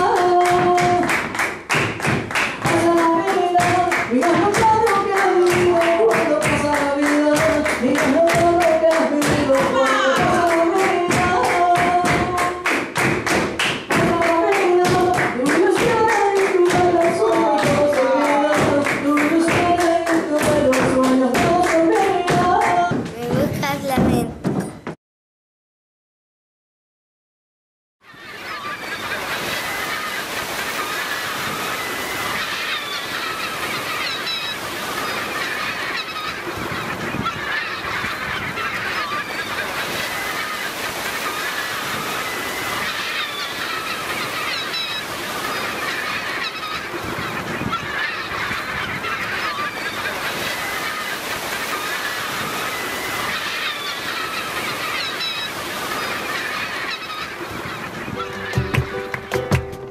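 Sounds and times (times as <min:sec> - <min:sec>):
seabirds calling: 0:00.0 - 0:12.7, 0:13.8 - 0:24.2, 0:28.0 - 0:59.9
faint surf: 0:28.1 - 0:58.6.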